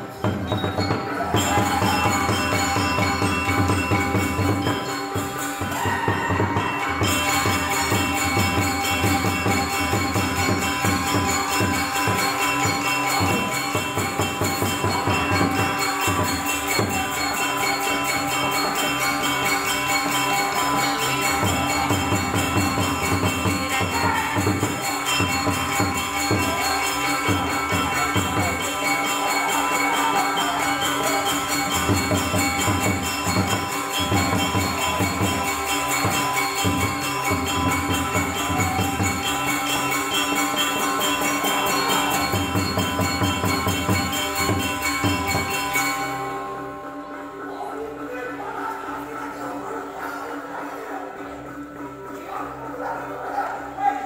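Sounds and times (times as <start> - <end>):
drum strokes: 0.0 - 46.4
metallophones and gongs ringing: 0.0 - 54.0.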